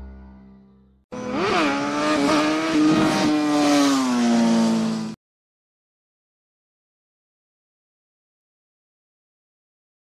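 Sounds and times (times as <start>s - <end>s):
swooping engine-like tone: 1.1s - 5.2s.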